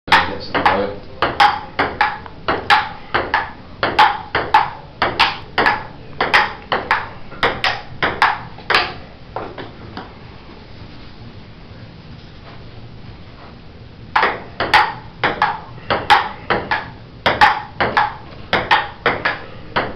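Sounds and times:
table tennis ball hits: 0.1 - 10.1, 14.1 - 19.9.

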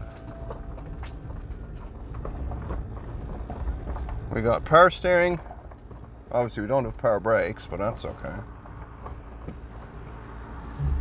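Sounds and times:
vehicle low rumble: 0.0 - 11.0.

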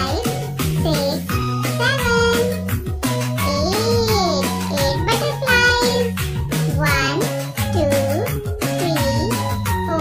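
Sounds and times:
child-like voice singing: 0.0 - 2.7, 3.4 - 6.2.

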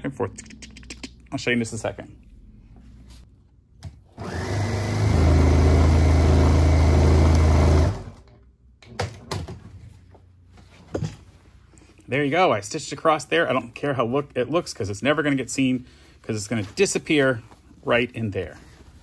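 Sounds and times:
electric sewing machine: 4.2 - 8.3.

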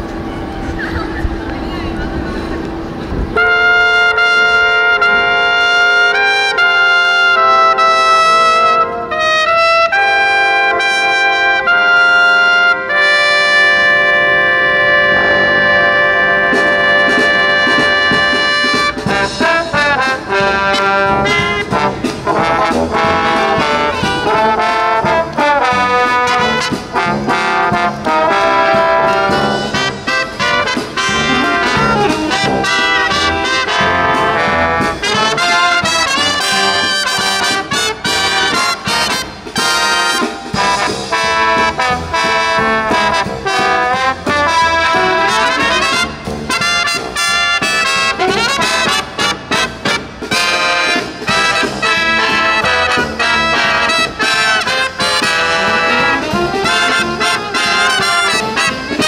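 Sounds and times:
marching band playing: 0.0 - 59.0
trumpet: 2.6 - 59.0.

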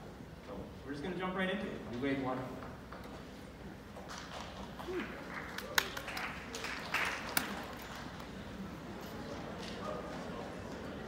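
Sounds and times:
hall room noise: 0.0 - 11.0.

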